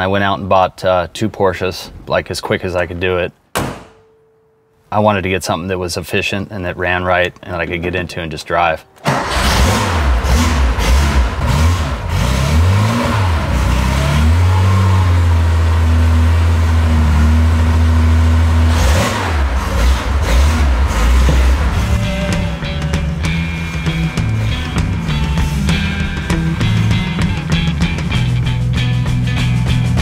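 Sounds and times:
car engine revving: 9.0 - 28.4
guitar music: 19.5 - 30.0.

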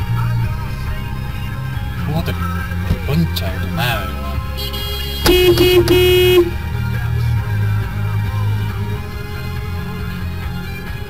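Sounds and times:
car horn blasts: 4.0 - 6.8.

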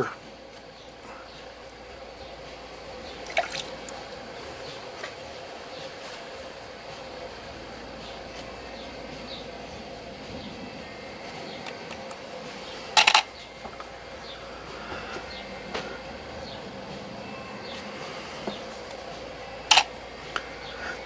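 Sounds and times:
faint room hum: 0.0 - 21.0.

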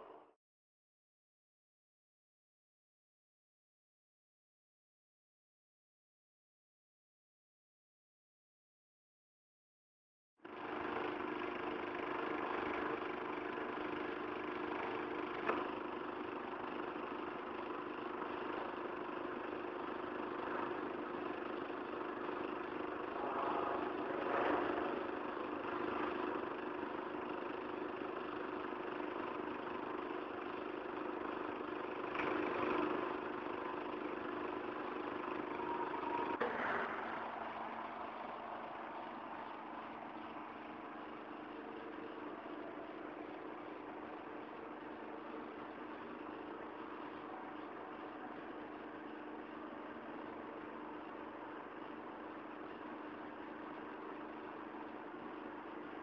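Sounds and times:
industrial machinery drone: 10.5 - 56.0
steady hum: 20.0 - 28.4.

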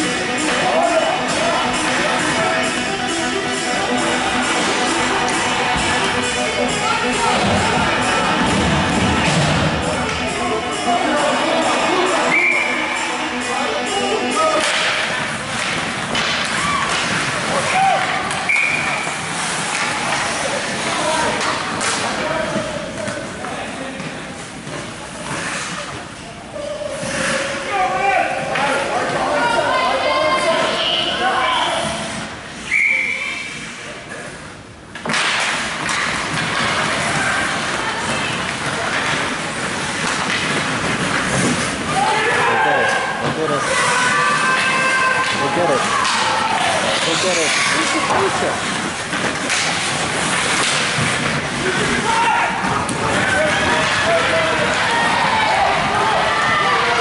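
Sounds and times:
background music: 0.0 - 15.5
spectators' voices: 0.0 - 57.0
hockey sticks clacking: 14.4 - 26.0, 34.9 - 56.0
skates scraping ice: 14.4 - 29.4, 35.1 - 57.0.

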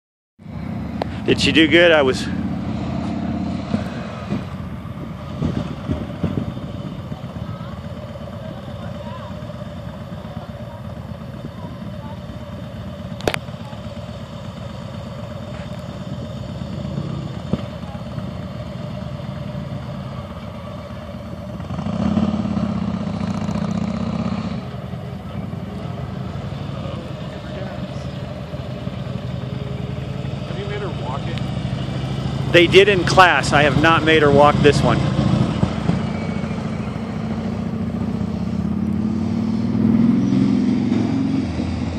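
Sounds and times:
motorcycle engine rumbling: 0.4 - 41.9.

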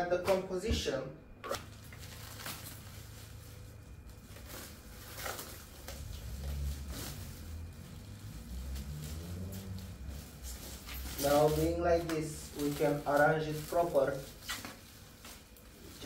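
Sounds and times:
low steady rumble: 0.0 - 16.0
plastic foil crinkling: 1.4 - 16.0.

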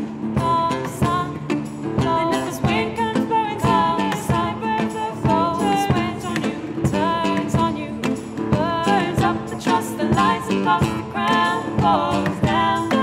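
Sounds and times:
person singing: 0.3 - 13.0.

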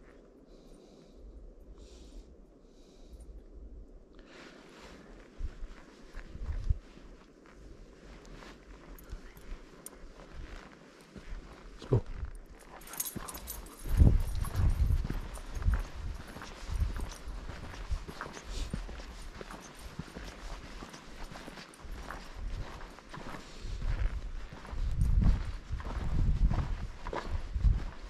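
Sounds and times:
footsteps on dirt trail: 4.2 - 28.0.

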